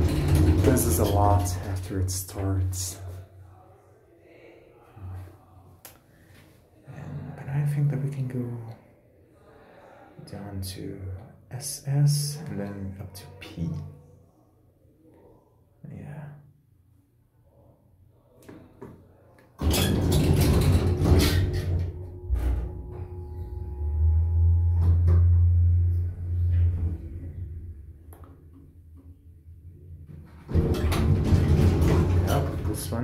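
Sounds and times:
elevator clatter: 0.0 - 1.9, 19.6 - 27.6, 30.3 - 33.0
elevator drive low buzz: 21.8 - 28.6.

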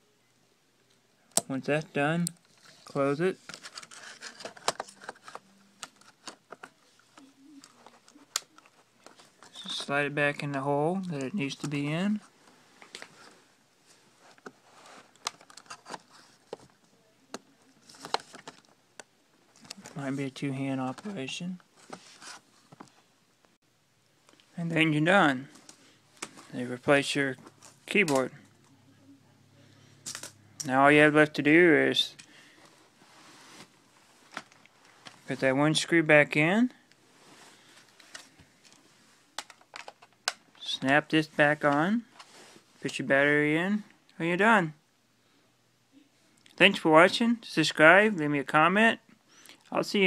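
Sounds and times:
faint room hiss: 0.0 - 50.0.

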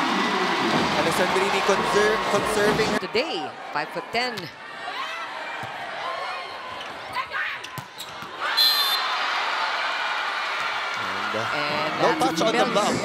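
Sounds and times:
crowd cheering: 0.0 - 13.0
crowd noise: 0.0 - 13.0.

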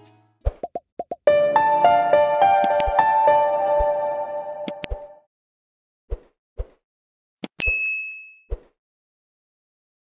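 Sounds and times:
mouse-style clicks: 2.6 - 3.0, 4.6 - 5.0
bright bell ding: 7.6 - 8.5.

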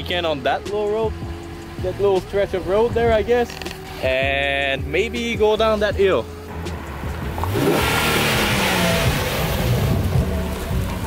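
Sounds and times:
wind and tyre noise: 5.5 - 11.0
car engine accelerating past: 6.5 - 11.0.

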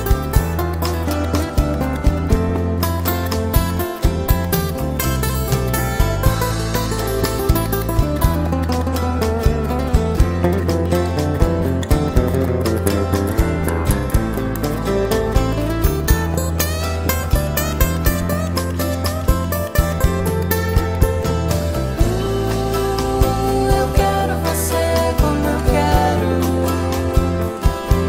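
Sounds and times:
plucked acoustic guitars: 0.0 - 28.0
sustained bass line: 0.0 - 28.0.

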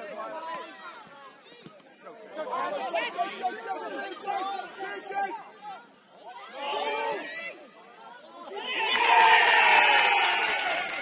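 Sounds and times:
people shouting and calling: 2.4 - 10.8.

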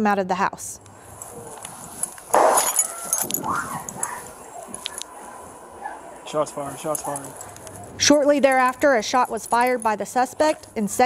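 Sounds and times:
dog barking: 2.4 - 8.0.

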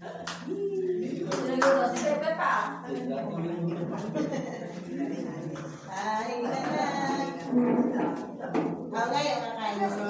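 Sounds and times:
group of people talking: 0.0 - 10.0
hand claps: 0.2 - 0.6, 1.2 - 2.2.

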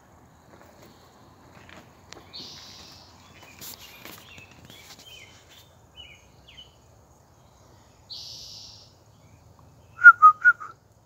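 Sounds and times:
faint small bird chirps: 2.2 - 6.8, 8.0 - 10.7
loud whistled notes: 10.0 - 10.8.

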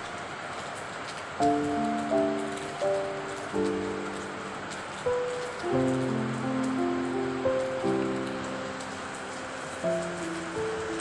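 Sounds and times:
rain on pavement: 0.0 - 11.0
slow background music: 1.3 - 11.0.

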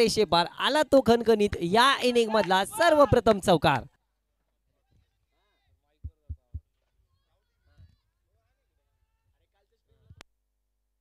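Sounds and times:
dull low thumps: 6.0 - 6.7.

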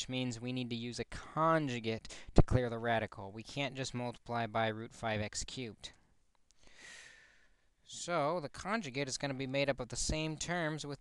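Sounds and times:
person breathing in: 6.6 - 7.7.

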